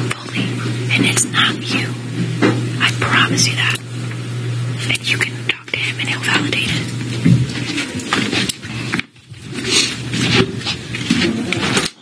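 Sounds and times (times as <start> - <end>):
people whispering: 0.0 - 2.1, 2.8 - 3.9, 4.8 - 7.0
steady low hum: 0.0 - 12.0.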